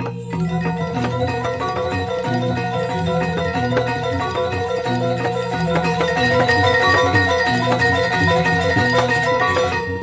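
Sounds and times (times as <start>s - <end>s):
drums playing repeating pattern: 0.0s - 10.0s
metallophones ringing: 0.0s - 10.0s.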